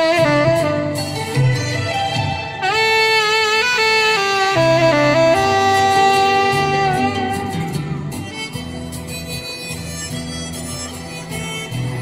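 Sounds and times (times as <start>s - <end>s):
low accompaniment: 0.0s - 12.0s
saxophone slow melody: 0.0s - 12.0s.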